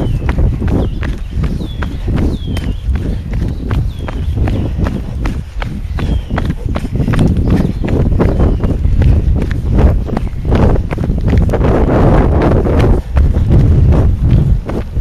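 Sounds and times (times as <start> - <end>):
bird chirping: 0.0 - 9.4
footsteps on gravel: 0.0 - 15.0
wind rumble on microphone: 0.0 - 15.0.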